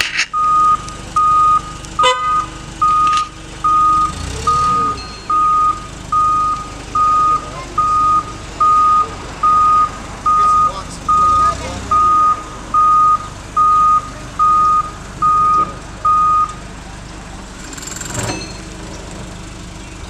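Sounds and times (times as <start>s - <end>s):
forklift engine running: 0.0s - 20.0s
reversing alarm beeping: 0.3s - 16.6s.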